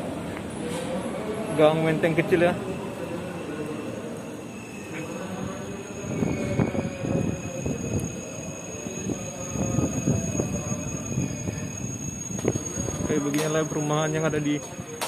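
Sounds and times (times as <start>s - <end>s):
electric train running: 4.4s - 15.0s.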